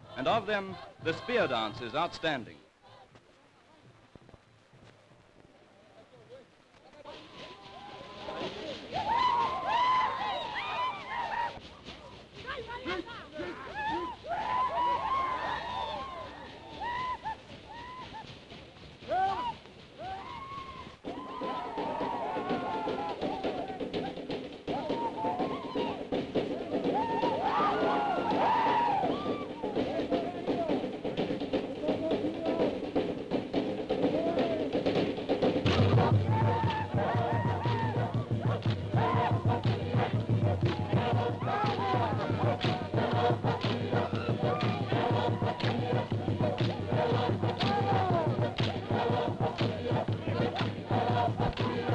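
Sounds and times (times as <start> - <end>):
drumming: 7.2 - 51.9
deep drumbeat: 21.0 - 51.9
group of voices chanting: 35.7 - 51.9.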